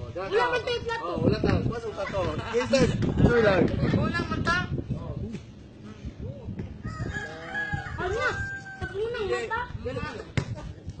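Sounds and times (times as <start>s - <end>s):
voices: 0.0s - 11.0s
rooster crowing: 6.8s - 9.2s.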